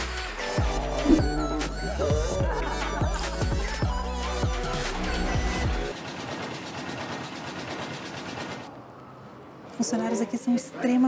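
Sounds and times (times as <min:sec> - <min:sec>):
background music: 0:00.0 - 0:06.0.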